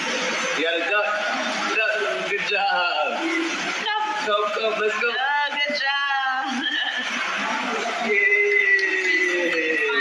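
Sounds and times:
indistinct background noise: 0.0s - 10.0s.

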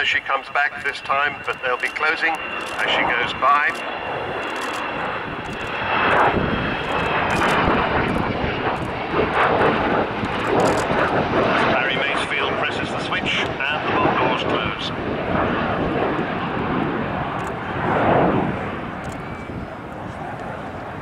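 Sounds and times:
jet aircraft fly-by roar: 0.0s - 21.0s.

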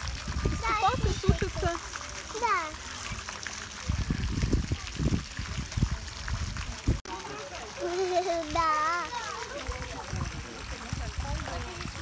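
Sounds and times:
hose jet splashing into pond: 0.0s - 12.0s
people talking: 0.3s - 12.0s.

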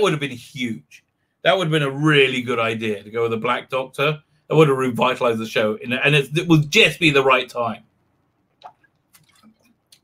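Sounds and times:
man sipping and swallowing: 8.4s - 10.0s.

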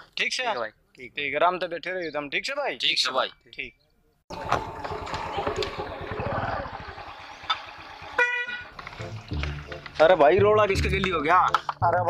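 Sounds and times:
scooter horn beep: 8.1s - 8.8s.

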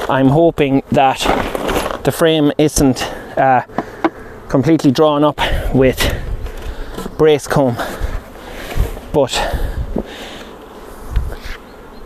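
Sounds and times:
honeybees buzzing: 0.0s - 12.0s.

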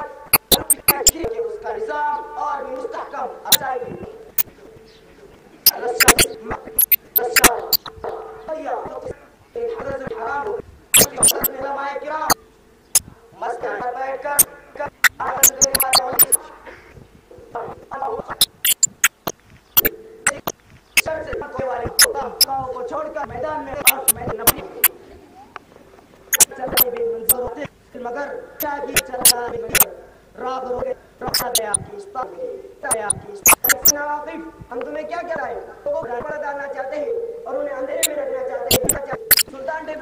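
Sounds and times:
man speaking: 0.0s - 4.0s, 5.7s - 6.6s, 7.2s - 7.8s, 8.7s - 12.4s, 13.5s - 16.5s, 30.8s - 32.1s, 32.9s - 34.4s, 35.9s - 40.0s
sharp clicks: 0.3s - 1.3s, 5.7s - 8.0s, 11.0s - 11.5s, 15.0s - 16.4s, 18.3s - 21.1s, 23.8s - 24.6s, 26.3s - 26.9s, 31.3s - 31.8s, 32.9s - 34.0s, 38.7s - 39.5s
voice holding drawn-out tones: 11.0s - 11.5s, 31.3s - 31.8s.

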